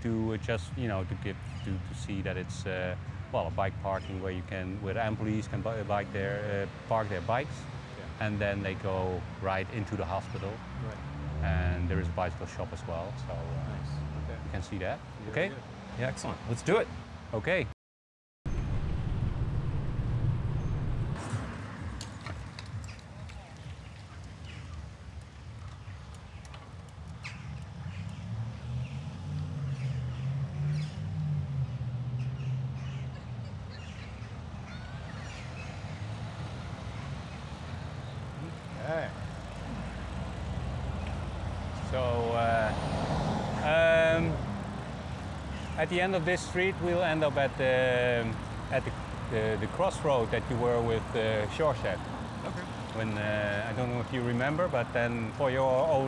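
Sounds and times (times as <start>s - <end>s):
rumble of bicycle tyres and wind: 18.5s - 56.0s.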